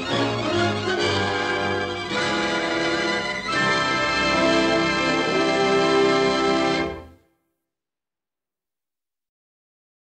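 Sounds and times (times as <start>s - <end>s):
orchestral music final chord: 0.0s - 7.2s.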